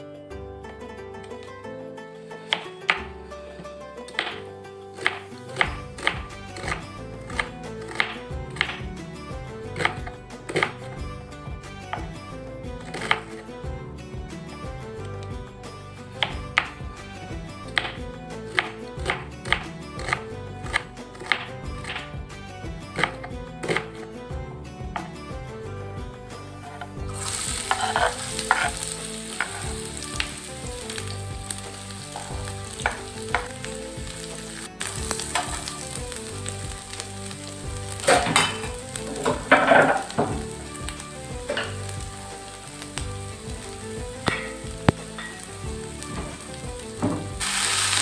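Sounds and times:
background music: 0:00.0 - 0:48.0
knife chopping on wooden board: 0:02.5 - 0:03.2, 0:04.1 - 0:09.0, 0:09.7 - 0:11.0, 0:12.8 - 0:13.4, 0:16.2 - 0:16.8, 0:17.7 - 0:22.2, 0:22.9 - 0:24.0, 0:32.1 - 0:33.6.

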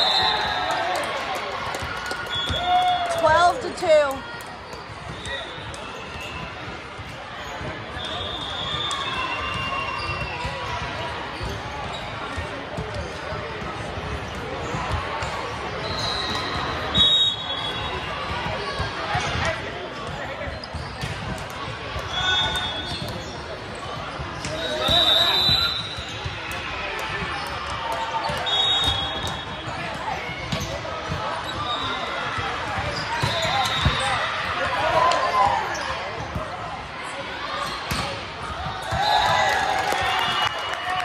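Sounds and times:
referee whistle blasts: 0:00.0 - 0:00.6, 0:07.9 - 0:10.4, 0:15.8 - 0:18.1, 0:22.1 - 0:23.0, 0:24.6 - 0:26.2, 0:28.4 - 0:29.6, 0:33.2 - 0:34.2
volleyballs hit and bouncing: 0:00.5 - 0:08.0, 0:08.7 - 0:17.0, 0:18.0 - 0:40.3.

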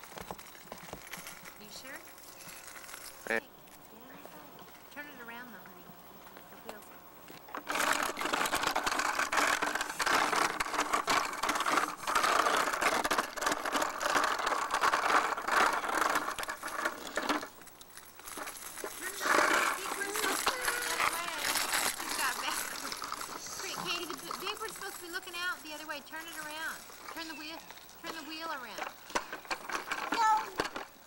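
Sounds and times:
plastic wheels rattling on concrete: 0:00.0 - 0:03.4, 0:07.5 - 0:31.0.

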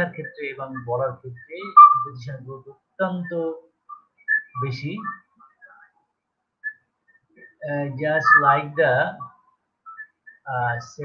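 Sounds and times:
man lecturing: 0:00.0 - 0:03.7, 0:04.6 - 0:05.2, 0:07.5 - 0:09.4, 0:10.4 - 0:11.0
faint whistle-like chirps: 0:03.9 - 0:06.0, 0:06.6 - 0:07.6, 0:09.2 - 0:10.9.

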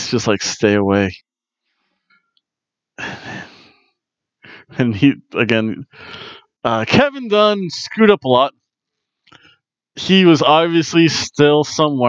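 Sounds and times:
man sighing: 0:03.0 - 0:03.6, 0:05.9 - 0:06.4.

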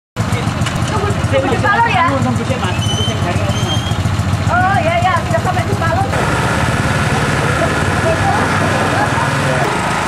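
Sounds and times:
motorcycle engines idling: 0:00.2 - 0:10.0
faint crowd voices: 0:07.0 - 0:10.0.

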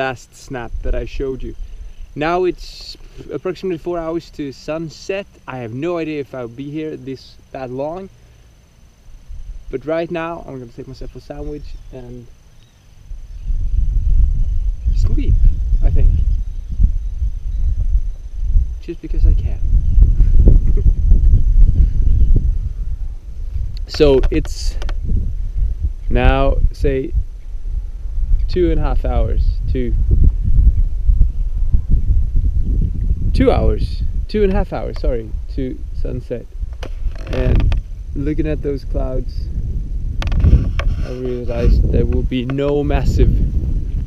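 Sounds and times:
wind buffeting microphone: 0:00.0 - 0:04.9, 0:09.1 - 0:12.4, 0:13.0 - 0:44.0.

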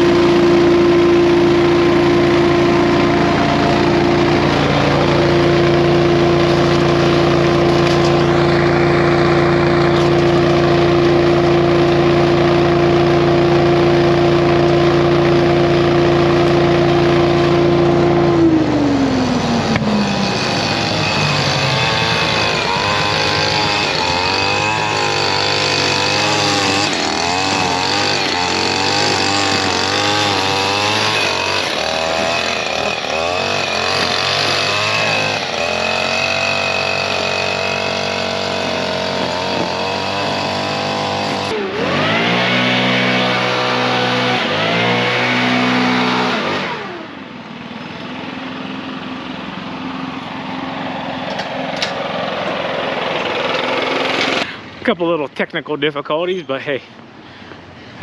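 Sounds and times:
leaf vacuum engine running: 0:00.0 - 0:58.0.

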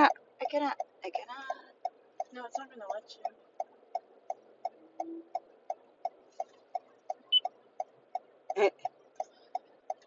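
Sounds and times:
turn signal clicking: 0:00.0 - 0:10.0.

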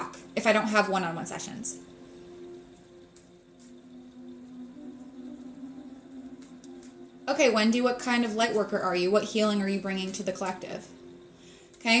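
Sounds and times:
soft ambient music: 0:00.0 - 0:12.0.

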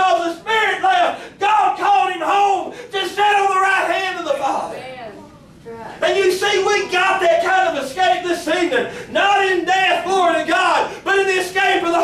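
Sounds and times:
man shouting high-pitched: 0:00.0 - 0:04.7, 0:06.0 - 0:12.0.

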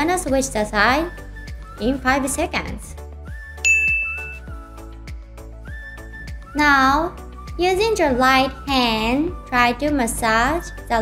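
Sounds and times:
soft music with steady beat: 0:00.0 - 0:10.9
bright ding chime: 0:03.6 - 0:04.5.

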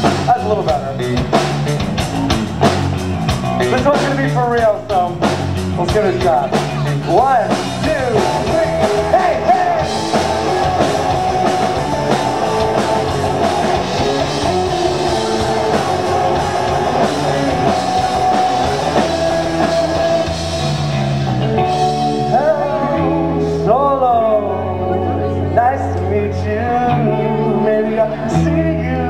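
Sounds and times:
rock band playing live: 0:00.0 - 0:29.0.

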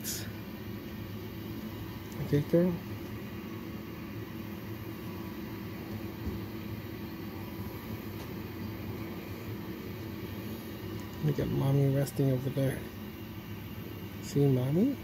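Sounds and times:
incubator hum: 0:00.0 - 0:15.0.

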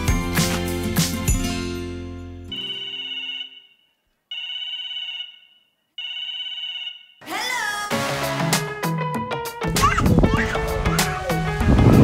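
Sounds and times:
telephone ringing: 0:02.5 - 0:07.2.

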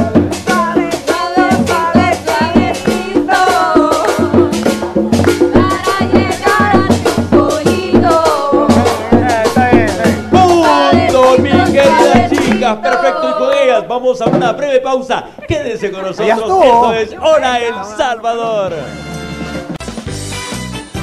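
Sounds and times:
women singing: 0:00.0 - 0:09.5, 0:10.4 - 0:13.8
congas and percussion: 0:00.0 - 0:21.0
tropical dance band playing: 0:00.0 - 0:21.0.

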